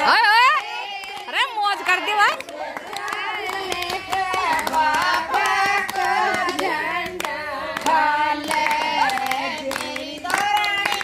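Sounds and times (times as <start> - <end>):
women singing folk song: 0.0 - 11.0
hand claps: 0.4 - 11.0.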